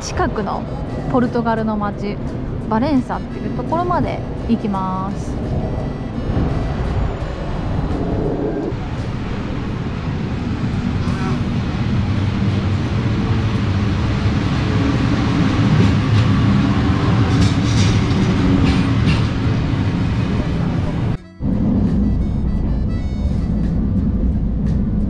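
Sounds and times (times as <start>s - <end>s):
electric train rumbling: 0.0s - 25.0s.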